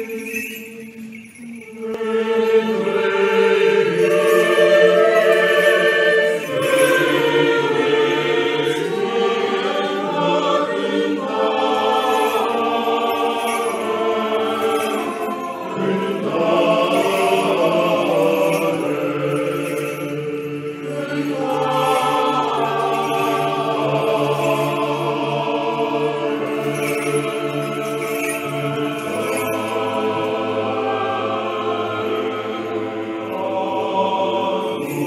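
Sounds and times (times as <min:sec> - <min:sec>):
choir chanting: 0:01.7 - 0:35.0.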